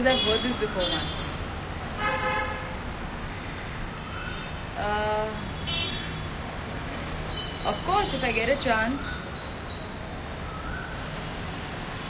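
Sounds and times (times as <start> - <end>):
street traffic rumble: 0.0 - 12.0
vehicle horn toot: 2.0 - 2.8.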